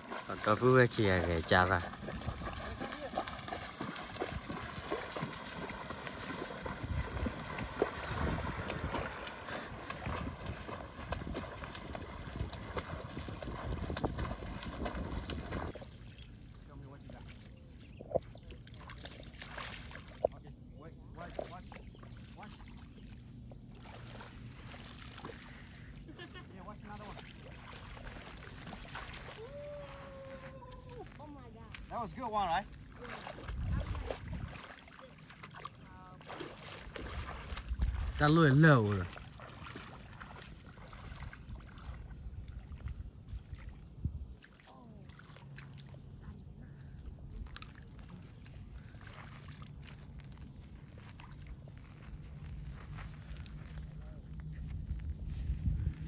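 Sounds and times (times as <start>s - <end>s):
children wading through shallow water: 0.0s - 56.0s
small splashes and clicks: 0.1s - 20.4s, 21.2s - 43.8s, 44.4s - 54.6s
distant voices: 20.5s - 40.8s.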